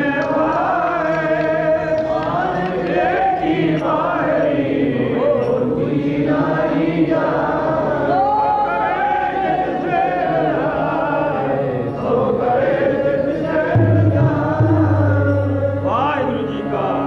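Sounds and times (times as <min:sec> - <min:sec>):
tabla: 0:00.0 - 0:04.5, 0:12.0 - 0:17.0
men singing a hymn: 0:00.0 - 0:17.0
harmonium drone: 0:12.2 - 0:17.0.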